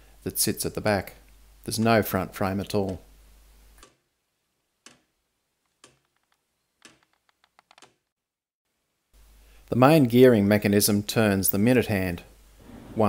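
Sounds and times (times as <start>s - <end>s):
wooden clock ticking: 4.8s - 8.0s.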